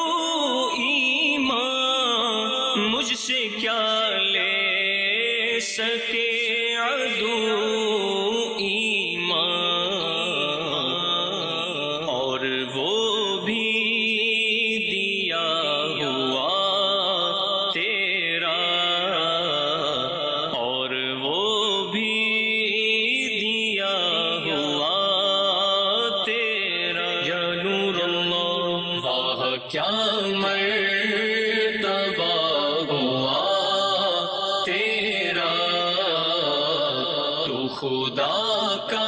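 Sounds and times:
man singing devotional song: 0:00.0 - 0:39.0.

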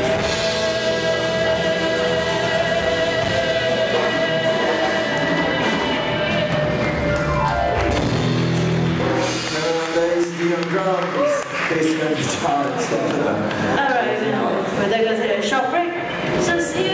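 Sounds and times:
live rock band: 0:00.0 - 0:11.6.

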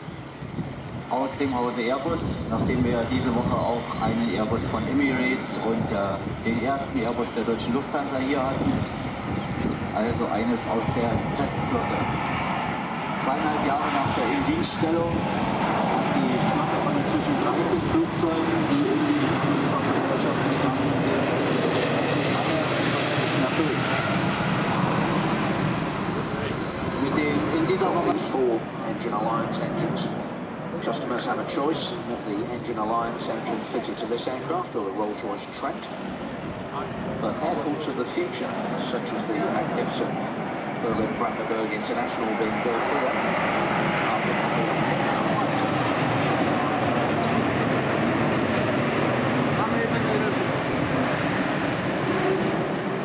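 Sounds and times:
jet engines roaring: 0:00.0 - 0:53.0
jetliner flying overhead: 0:00.0 - 0:53.0.

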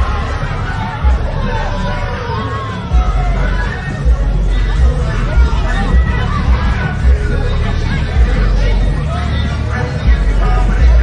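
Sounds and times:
crowd chatter: 0:00.0 - 0:11.0
music with heavy bass beat: 0:00.0 - 0:11.0.

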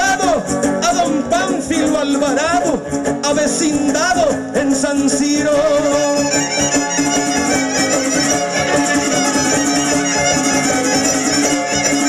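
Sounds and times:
strummed guitar: 0:00.0 - 0:12.0
violins playing melody: 0:06.0 - 0:12.0.

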